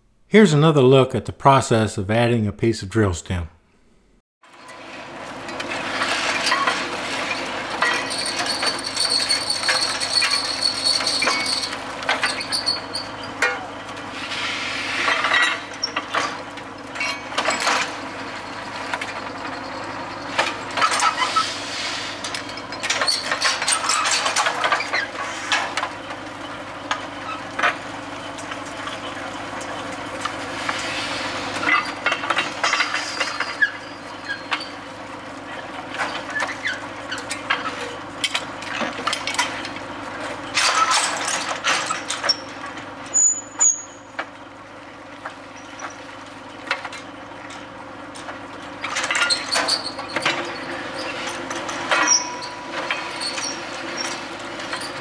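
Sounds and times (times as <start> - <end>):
drilling rig engine running: 5.0 - 35.5.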